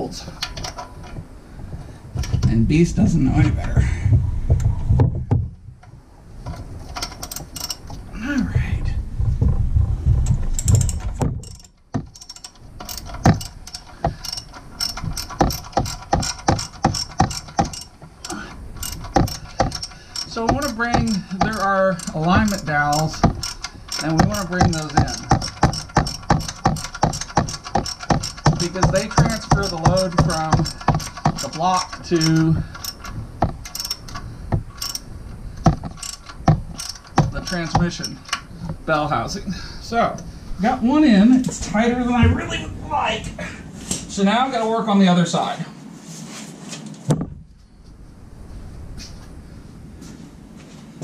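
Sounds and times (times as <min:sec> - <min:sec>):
socket ratchet clicking: 0:06.9 - 0:08.0, 0:10.6 - 0:38.8.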